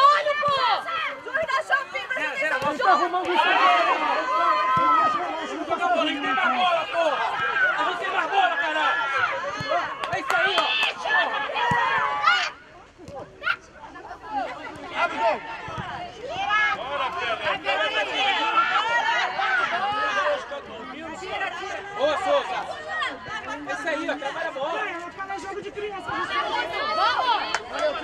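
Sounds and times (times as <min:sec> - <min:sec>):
crowd calling and shouting: 0:00.0 - 0:28.0.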